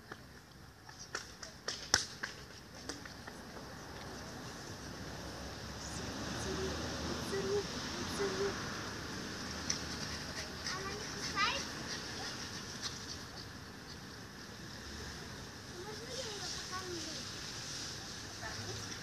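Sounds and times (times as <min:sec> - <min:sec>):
outdoor background noise: 0:00.0 - 0:19.0
faint unclear voices: 0:02.8 - 0:09.1.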